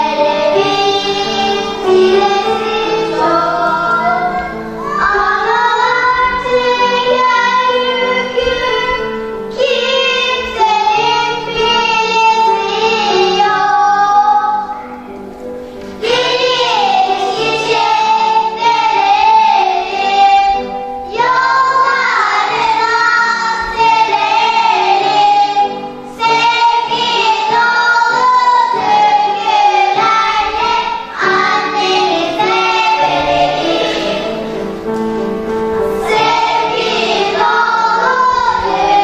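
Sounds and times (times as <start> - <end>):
children's choir singing: 0.0 - 39.0.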